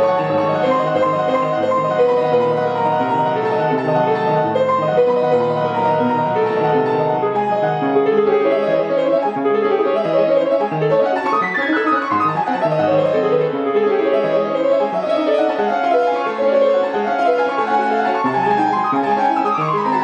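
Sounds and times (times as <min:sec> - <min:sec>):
player piano playing: 0:00.0 - 0:20.0.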